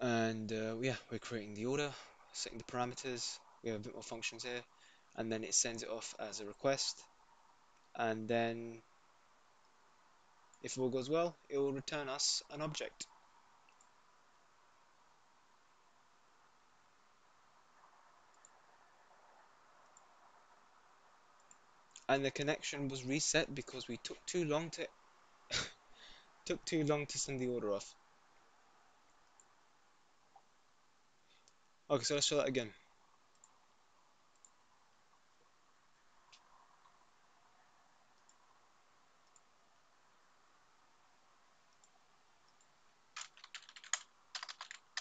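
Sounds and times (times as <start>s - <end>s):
soft sharp clicks: 18.3s - 18.6s, 34.3s - 34.6s, 39.2s - 39.5s.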